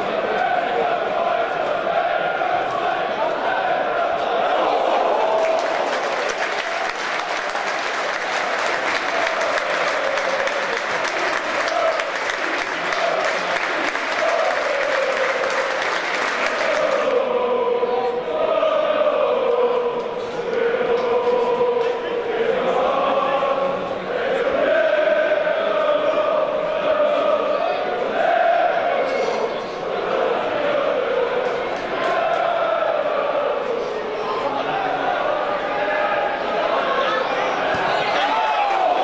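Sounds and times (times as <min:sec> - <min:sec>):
crowd noise: 0:00.0 - 0:39.0
crowd singing a chant: 0:00.0 - 0:39.0
crowd clapping: 0:04.8 - 0:17.2, 0:38.0 - 0:39.0.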